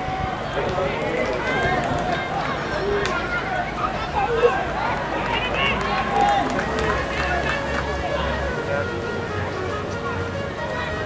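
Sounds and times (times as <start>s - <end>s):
people shouting and calling: 0.0s - 11.0s.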